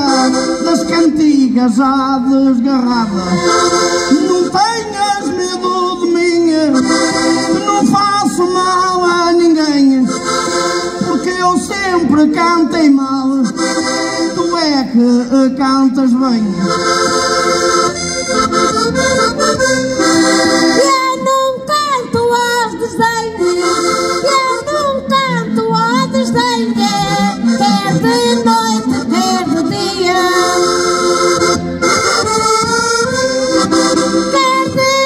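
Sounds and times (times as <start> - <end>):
accordion folk accompaniment: 0.0 - 35.0
woman singing into a microphone: 20.8 - 23.6, 24.2 - 30.7.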